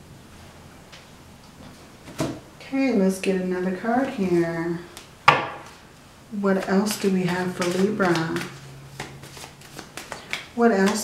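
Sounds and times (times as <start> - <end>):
person speaking: 2.6 - 5.0, 6.3 - 8.6
cards being shuffled: 6.6 - 11.0.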